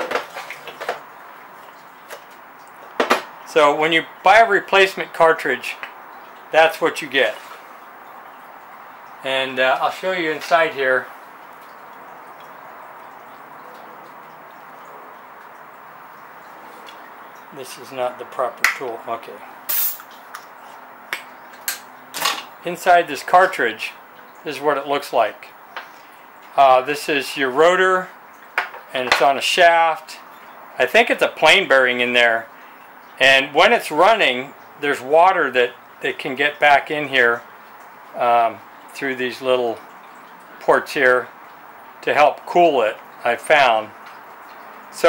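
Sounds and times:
light metallic clinks and knocks: 19.7s - 20.2s.

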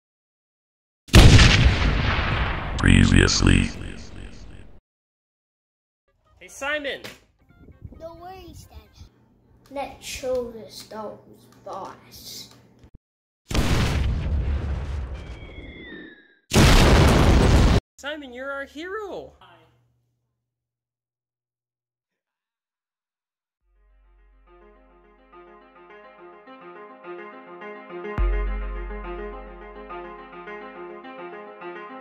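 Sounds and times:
explosion: 1.1s - 4.7s, 13.5s - 15.7s, 16.5s - 17.8s
loud boom with rumble: 1.2s - 4.6s
deep voice speaking: 2.8s - 4.8s.

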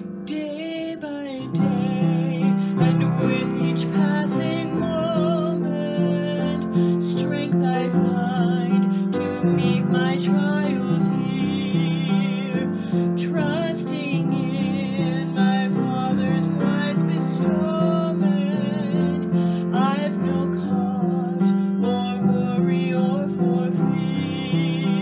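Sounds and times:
upright piano playing chords: 0.0s - 25.0s
woman singing with vibrato: 0.0s - 25.0s.

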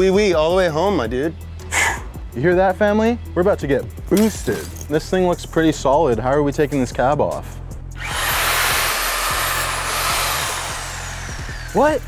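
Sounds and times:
reciprocating saw motor whine: 8.0s - 12.0s.

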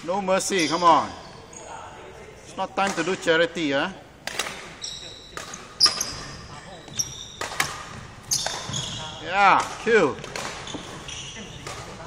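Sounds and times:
badminton knocks on wooden court: 7.4s - 8.9s, 9.6s - 11.0s.

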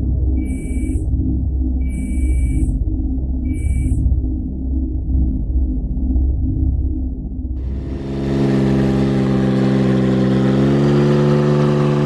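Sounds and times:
low dark drone music: 0.0s - 12.0s
electronic typing beeps: 0.4s - 1.0s, 1.8s - 2.8s, 3.5s - 4.0s.

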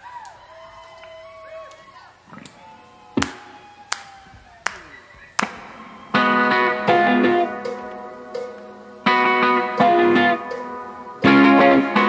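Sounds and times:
hand claps: 3.2s - 6.1s.

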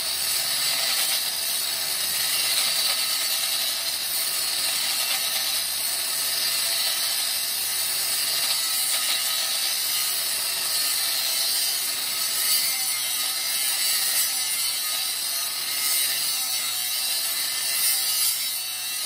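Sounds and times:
angle grinder cutting metal: 0.0s - 19.0s.

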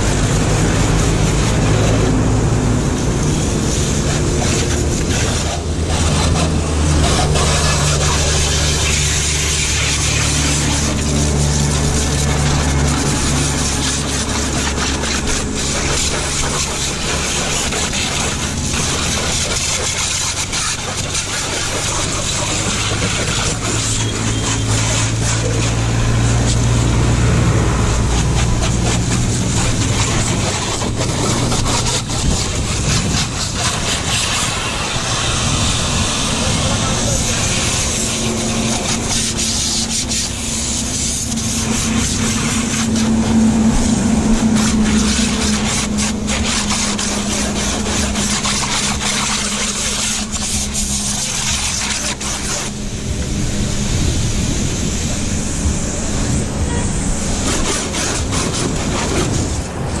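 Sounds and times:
hose spraying water on car: 0.0s - 60.0s
low engine hum: 0.0s - 60.0s.

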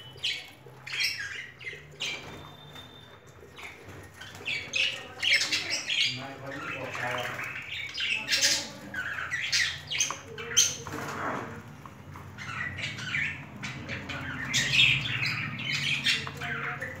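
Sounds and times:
budgerigars chattering: 3.4s - 11.3s, 12.3s - 17.0s.

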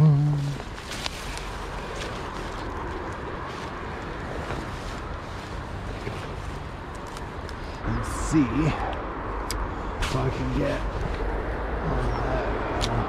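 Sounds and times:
faint rustles and ticks: 0.2s - 7.8s
wind rumble on microphone: 8.8s - 13.0s.

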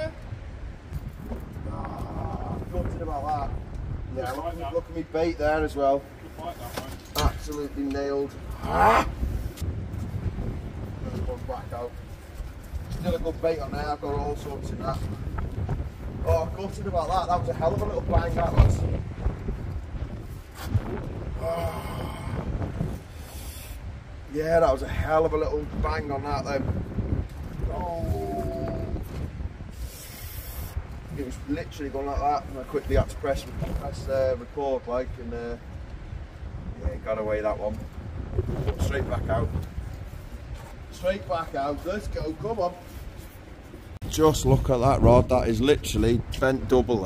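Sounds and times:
wind buffeting microphone: 0.0s - 47.0s
hissing rush: 21.4s - 24.0s, 29.7s - 30.9s.

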